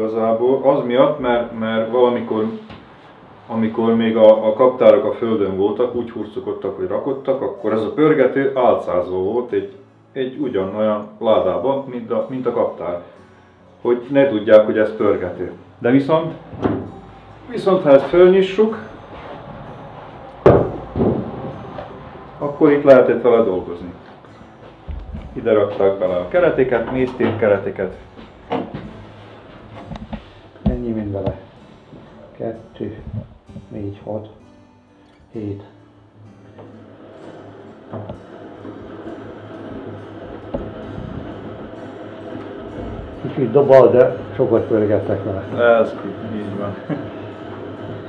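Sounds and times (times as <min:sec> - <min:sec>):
wooden lid knocking down: 0:20.4 - 0:21.5
extractor knocks: 0:29.8 - 0:31.4
hand-cranked honey extractor spinning: 0:36.8 - 0:48.0.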